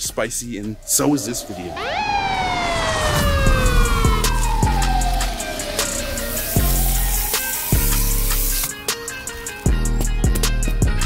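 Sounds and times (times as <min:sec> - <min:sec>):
falling pitch sweep: 0:00.4 - 0:08.3
siren-like wail: 0:00.6 - 0:08.4
music with a beat: 0:03.9 - 0:11.0.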